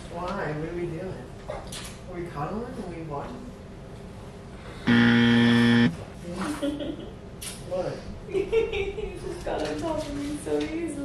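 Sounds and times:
game-show buzzer: 0:04.9 - 0:05.9.

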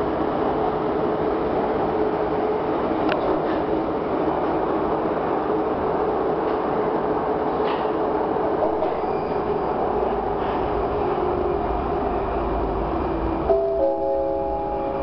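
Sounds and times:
train wheels rumbling on rail: 0:00.0 - 0:15.0.

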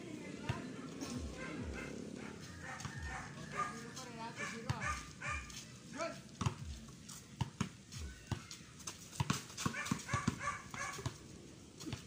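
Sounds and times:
small dog barking and yipping: 0:01.3 - 0:03.8, 0:04.4 - 0:05.6, 0:09.6 - 0:11.1.

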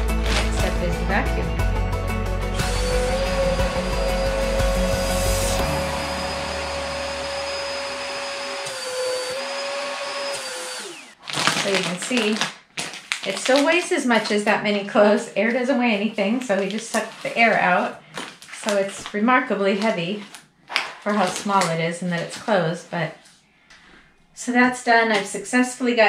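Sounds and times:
vacuum cleaner sucking air: 0:02.4 - 0:11.2.

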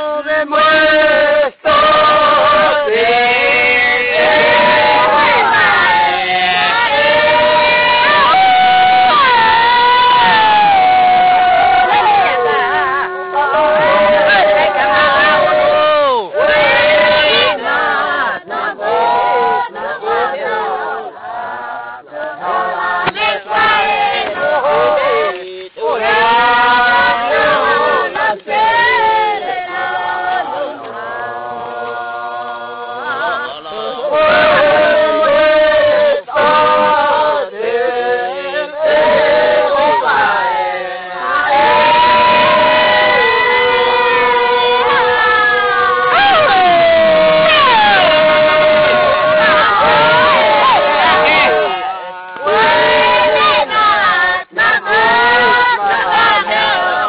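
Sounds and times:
group of voices chanting: 0:00.0 - 0:57.0
sliding vocal call: 0:00.0 - 0:57.0.

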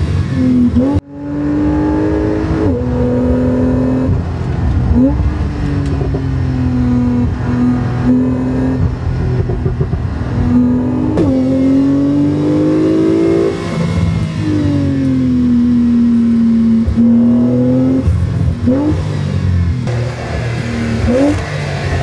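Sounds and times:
car engine revving: 0:00.0 - 0:22.0.

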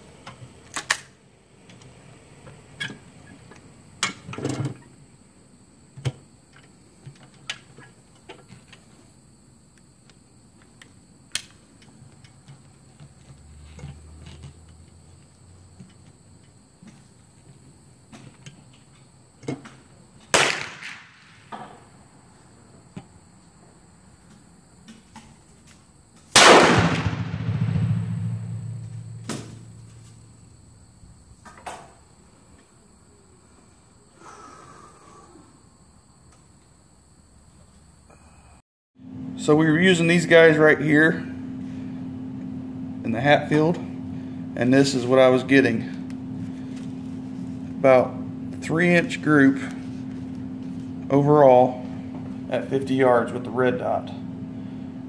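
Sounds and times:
loud shotgun shot: 0:20.3 - 0:21.4, 0:26.4 - 0:29.6.

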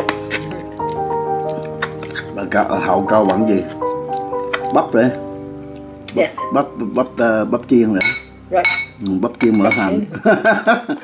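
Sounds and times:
utensil clinking on frying pan: 0:08.0 - 0:10.6.

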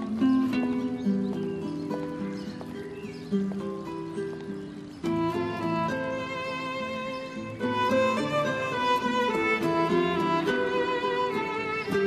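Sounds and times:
light melodic background music: 0:00.1 - 0:12.0.

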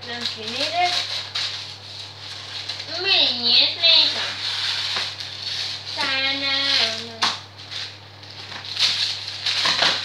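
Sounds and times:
fan oven humming: 0:00.0 - 0:10.0.

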